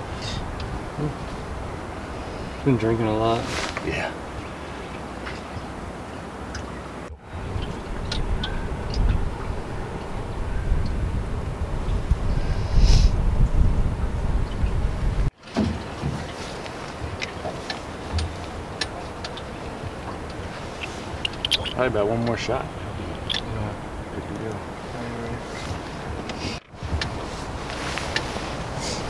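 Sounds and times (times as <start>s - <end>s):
low outdoor rumble: 0.0s - 29.0s.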